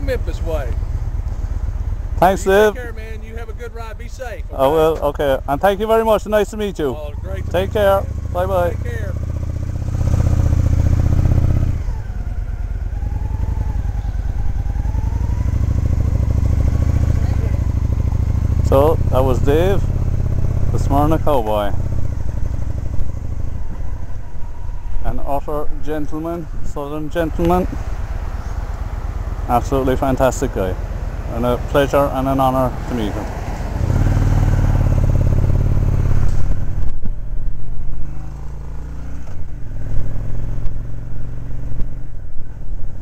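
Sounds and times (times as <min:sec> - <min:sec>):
motorcycle engine running: 0:00.0 - 0:43.0.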